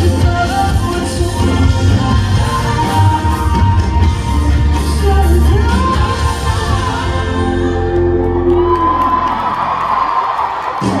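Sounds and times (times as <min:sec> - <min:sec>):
live band music: 0:00.0 - 0:09.5
crowd cheering and screaming: 0:01.8 - 0:11.0.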